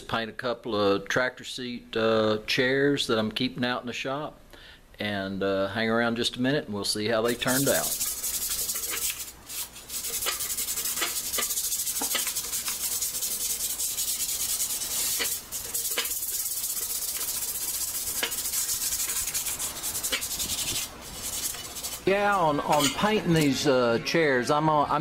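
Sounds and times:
sandpaper sanding metal: 7.3 - 23.5.

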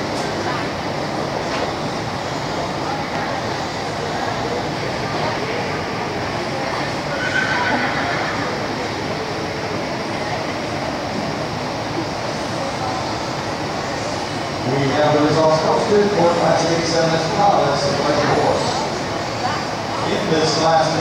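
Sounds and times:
murmur of people talking: 0.0 - 21.0
horse whinnying: 7.1 - 8.6.

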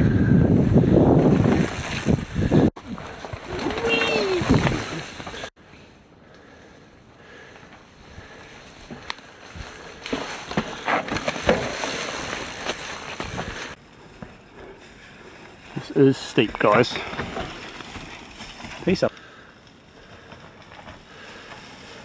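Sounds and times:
bike tyres on dirt: 0.0 - 22.0
knocks over roots: 10.0 - 13.8.

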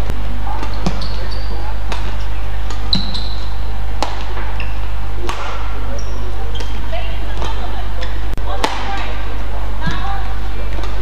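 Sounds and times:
steady low hum: 0.0 - 11.0
shoes squeaking on court: 0.5 - 3.6, 4.2 - 4.9, 5.8 - 7.7
rackets and shuttlecock knocks: 1.9 - 3.1, 4.0 - 4.6, 5.2 - 5.7, 6.6 - 9.2.

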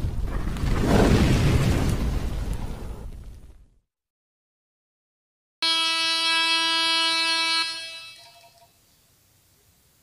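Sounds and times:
buzzy horn-like tone: 5.6 - 8.7.

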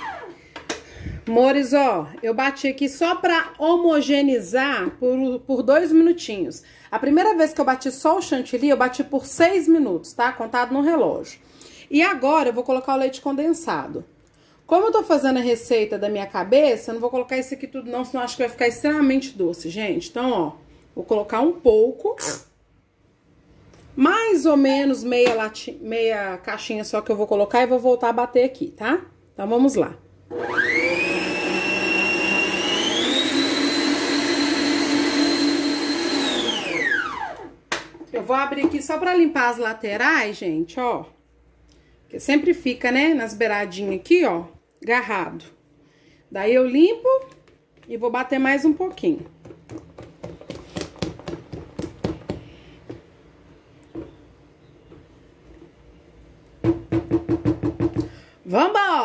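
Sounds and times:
stand mixer motor whining: 30.3 - 37.5.

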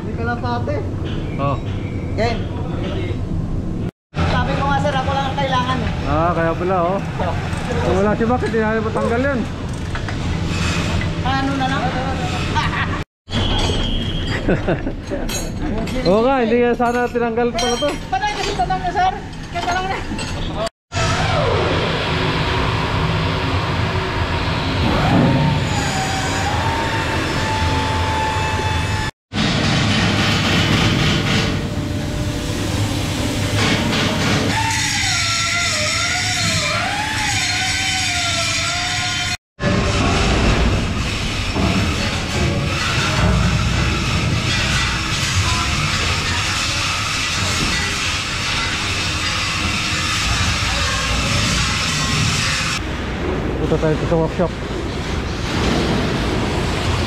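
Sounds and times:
engine room repair work din: 0.0 - 57.0
angle grinder cutting metal: 33.6 - 52.8.

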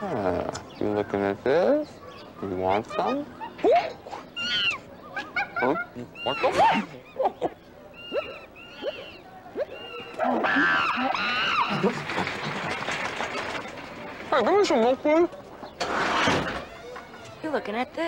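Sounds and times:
chimpanzee hoots and squeals: 2.9 - 11.8.

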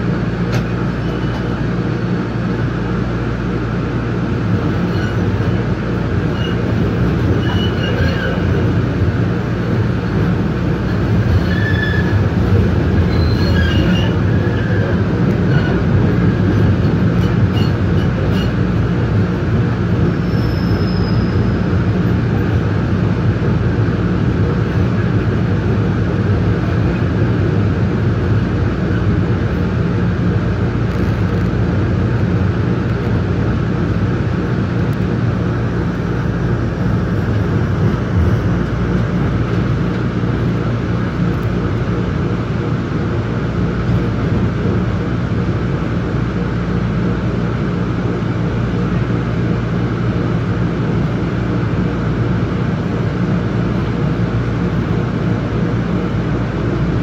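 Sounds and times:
low motor hum: 0.0 - 57.0
train wheels rumbling on rail: 0.0 - 57.0.

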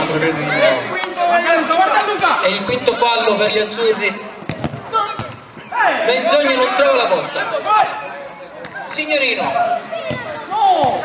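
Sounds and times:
faint players' voices: 0.0 - 11.0.

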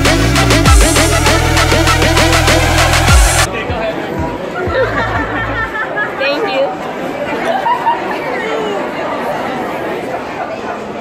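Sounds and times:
low bass hum: 0.0 - 3.5
bass-heavy dance music: 0.0 - 5.3
crowd chatter and laughter: 0.0 - 11.0.

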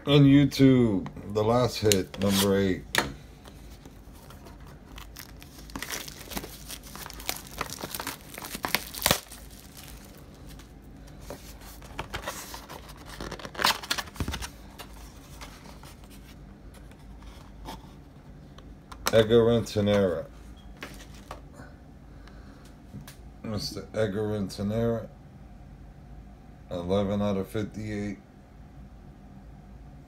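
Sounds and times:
plastic shrink wrap tearing and crinkling: 4.0 - 10.7, 11.4 - 16.1
cardboard box being opened: 4.1 - 10.1.

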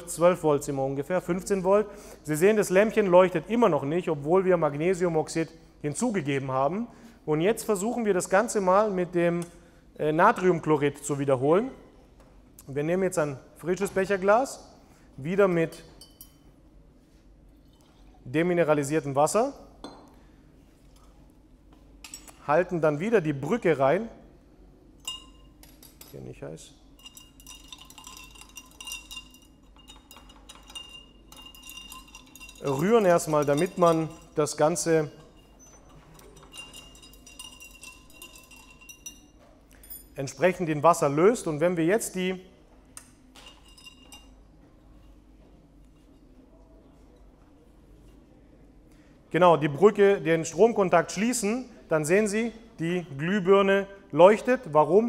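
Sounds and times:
glass beaker clink: 15.5 - 16.6, 17.6 - 18.2, 19.8 - 20.2, 25.0 - 26.1, 26.9 - 41.5, 43.4 - 44.4.

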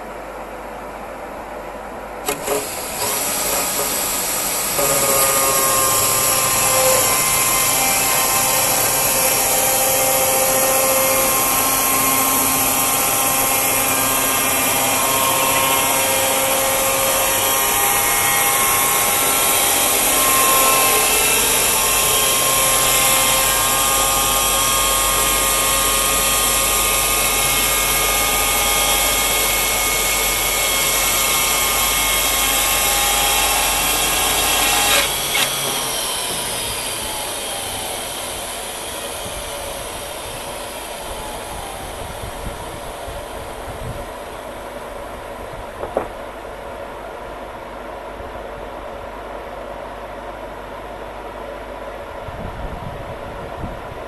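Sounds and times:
band sawmill cutting log: 2.2 - 43.8.

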